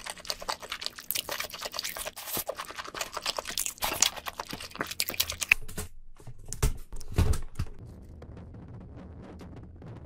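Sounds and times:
chewing crab meat: 0.0s - 5.6s
crab shell cracking and crackling: 0.0s - 5.7s.

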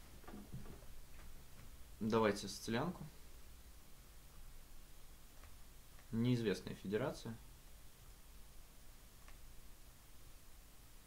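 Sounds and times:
faint chess move ticks: 5.3s - 6.2s, 9.2s - 9.5s.

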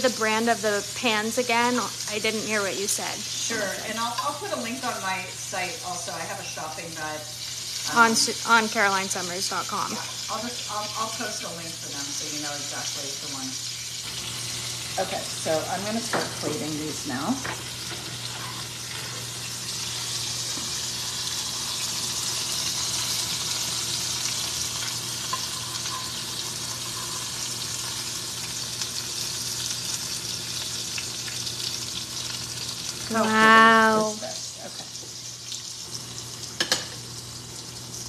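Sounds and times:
food sizzling in oil: 0.0s - 38.0s
person humming: 33.1s - 34.2s.

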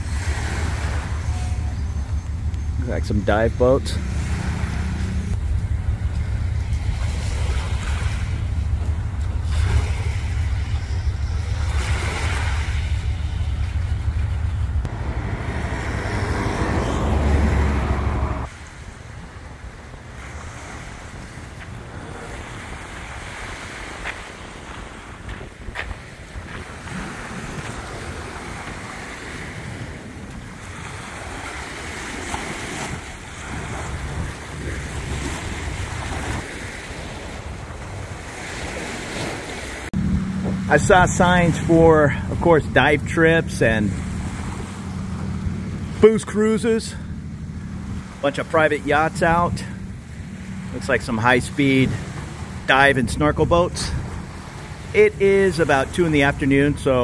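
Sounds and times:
wind buffeting microphone: 0.0s - 46.0s, 46.7s - 57.0s
waves lapping on beach: 0.0s - 57.0s.

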